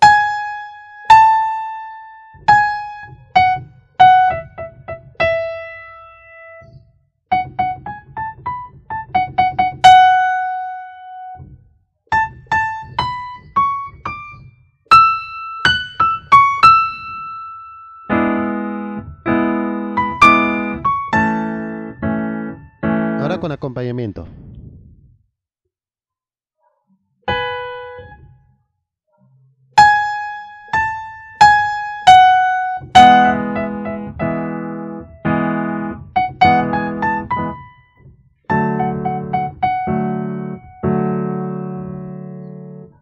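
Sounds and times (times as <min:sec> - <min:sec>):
electronic keyboard melody: 0:00.0 - 0:11.5, 0:12.1 - 0:23.6, 0:27.3 - 0:28.4, 0:29.8 - 0:43.0
keyboard chords: 0:00.0 - 0:23.8, 0:27.3 - 0:28.4, 0:29.8 - 0:43.0.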